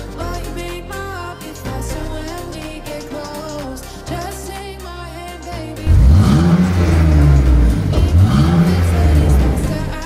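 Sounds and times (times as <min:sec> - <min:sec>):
car engine revving: 0:05.8 - 0:10.0.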